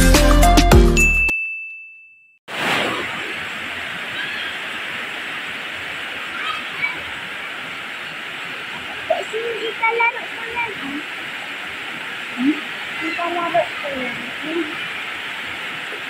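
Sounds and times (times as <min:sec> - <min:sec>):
intro music: 0:00.0 - 0:01.2
high chime: 0:00.9 - 0:02.4
rain on leaves: 0:02.5 - 0:16.0.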